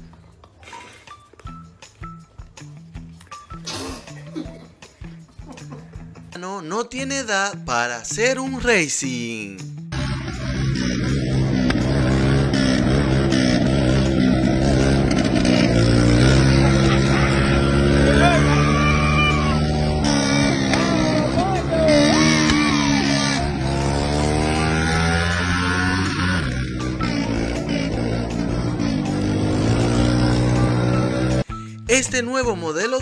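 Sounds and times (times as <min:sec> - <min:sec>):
small motorcycle engine revving: 0:09.9 - 0:31.4.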